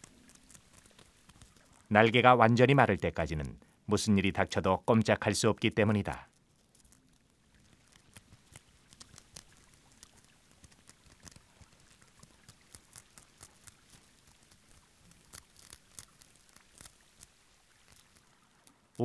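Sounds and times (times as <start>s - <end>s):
faint clicks and crackles: 0.0s - 19.0s.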